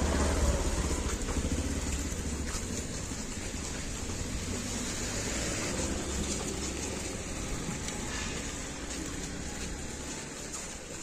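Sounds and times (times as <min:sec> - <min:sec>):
vehicle engine running: 0:00.0 - 0:11.0.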